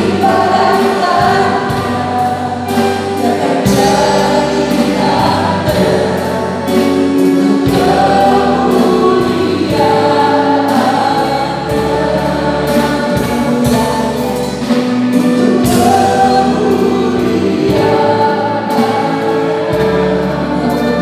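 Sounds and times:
bass accompaniment with steady beat: 0:00.0 - 0:21.0
vocal quartet singing in harmony: 0:00.0 - 0:21.0.

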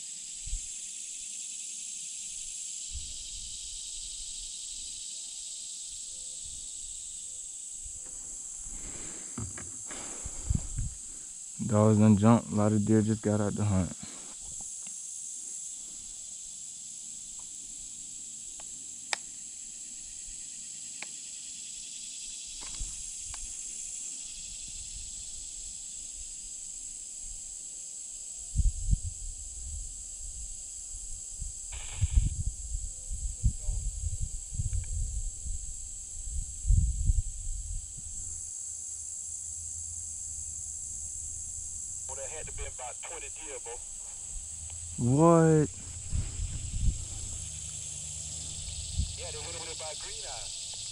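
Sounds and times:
insects droning: 0:00.0 - 0:50.9
low rumbling on microphone: 0:45.7 - 0:49.2.

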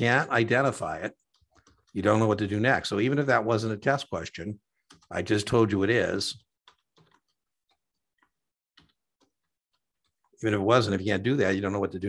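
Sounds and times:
faint keyboard keystrokes: 0:01.2 - 0:02.0, 0:06.6 - 0:10.4.

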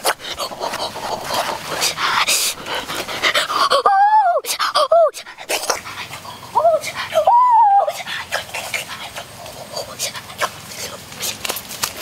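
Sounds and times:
quick breathy panting: 0:00.0 - 0:03.8, 0:04.4 - 0:07.2
high whining cries: 0:03.6 - 0:05.2, 0:06.5 - 0:08.1.

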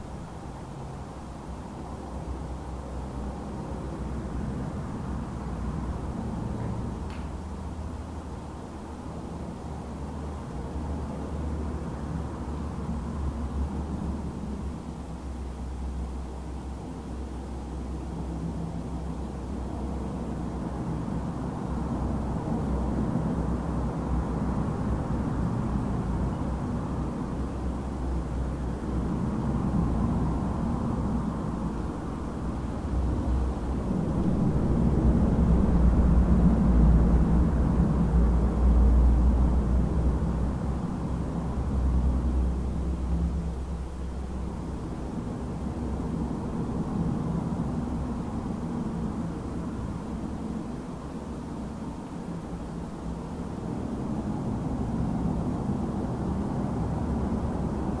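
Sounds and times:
low ambient rumble: 0:00.0 - 0:58.0.

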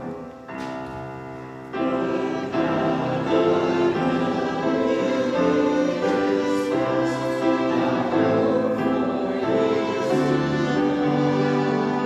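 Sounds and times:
congregation singing a hymn: 0:00.0 - 0:12.0
piano accompaniment: 0:00.0 - 0:12.0.

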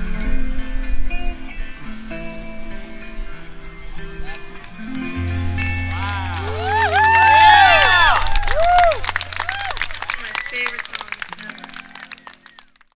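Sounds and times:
audience cheering and whooping: 0:05.3 - 0:12.8
audience clapping: 0:05.8 - 0:13.0.

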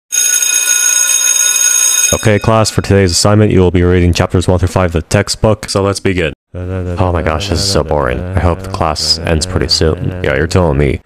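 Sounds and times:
electric school bell ringing: 0:00.1 - 0:02.9.

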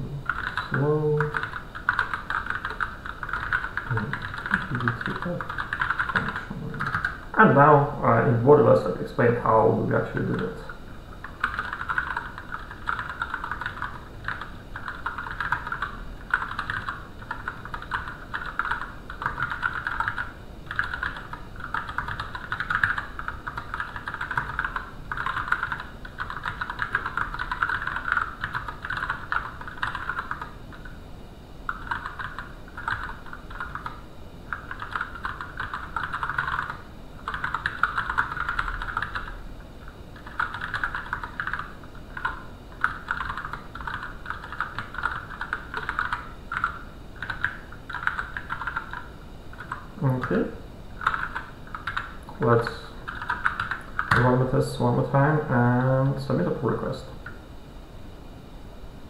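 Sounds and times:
typing on computer keyboard: 0:00.2 - 0:07.2, 0:10.2 - 0:31.0, 0:31.7 - 0:50.4, 0:51.0 - 0:54.4.

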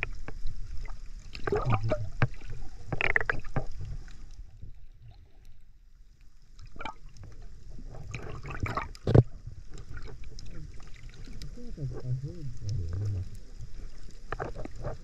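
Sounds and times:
underwater sloshing and bubbling: 0:00.0 - 0:15.0
steady low rumble: 0:10.4 - 0:13.8.

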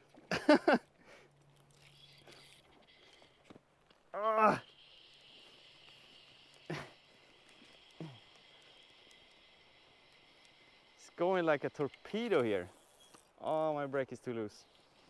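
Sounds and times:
man laughing: 0:00.3 - 0:00.9, 0:06.7 - 0:07.0
steady high hiss: 0:04.1 - 0:15.0.

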